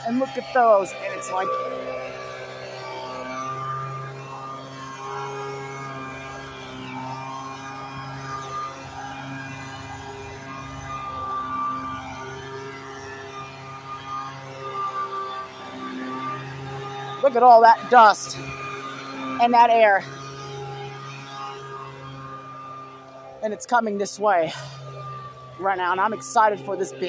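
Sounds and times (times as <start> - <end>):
leaf blower running: 0.0 - 27.0.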